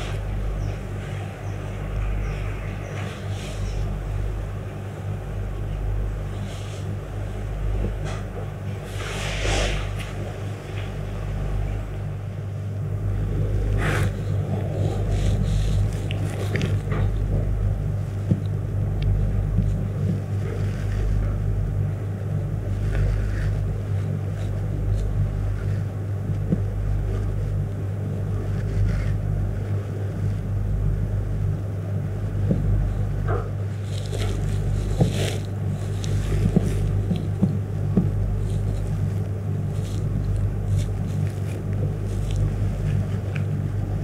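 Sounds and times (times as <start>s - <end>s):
steady low hum: 0.0s - 44.0s
soft rustles and taps: 14.0s - 27.6s, 32.3s - 44.0s.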